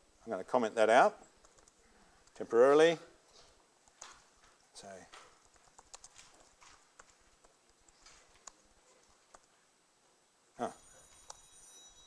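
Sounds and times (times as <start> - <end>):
mobile phone ringtone: 10.8 - 12.0.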